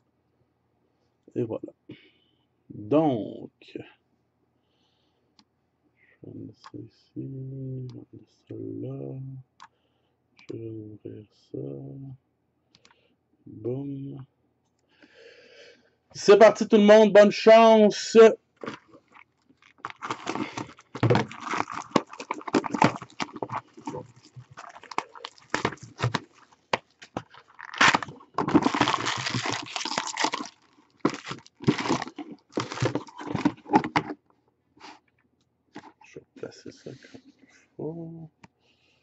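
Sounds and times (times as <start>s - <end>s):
plastic wrap crinkling: 18.6s - 34.0s.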